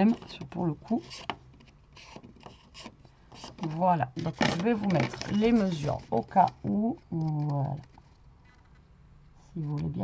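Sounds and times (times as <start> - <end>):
paper rustling: 0.0 - 8.8.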